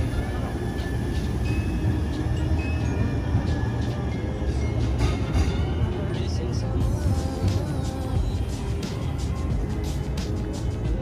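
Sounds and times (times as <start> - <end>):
light rail train rumbling: 0.0 - 11.0
traffic noise: 0.0 - 11.0.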